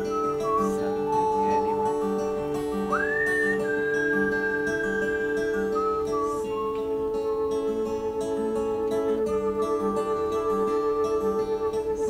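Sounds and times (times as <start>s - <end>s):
plucked guitar: 0.0s - 12.0s
whistled melody: 0.0s - 12.0s.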